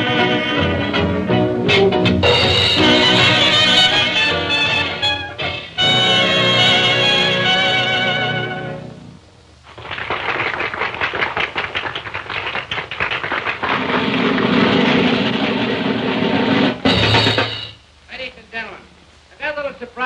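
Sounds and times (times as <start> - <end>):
audience clapping: 9.7 - 15.6.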